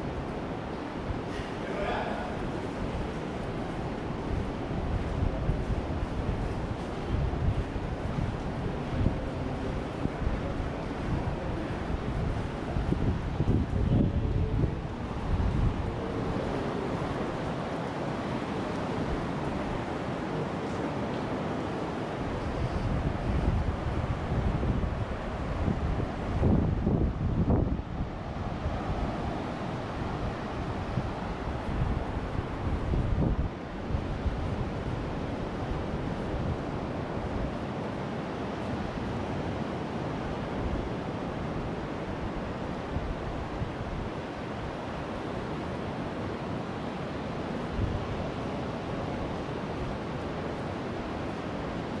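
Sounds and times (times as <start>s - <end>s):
wind buffeting microphone: 0.0s - 20.7s, 22.1s - 45.7s
surf washing onto sand: 0.0s - 52.0s.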